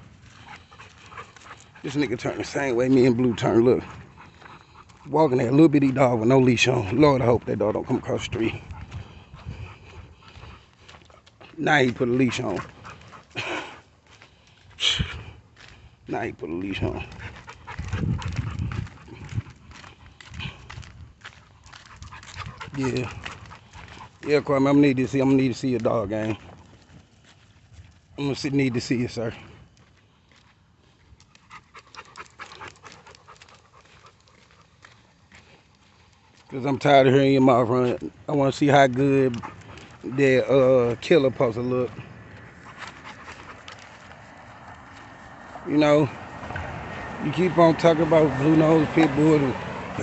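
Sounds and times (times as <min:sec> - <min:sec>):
footsteps scuffing on pavement: 0:00.0 - 0:46.7
dog panting: 0:00.0 - 0:50.0.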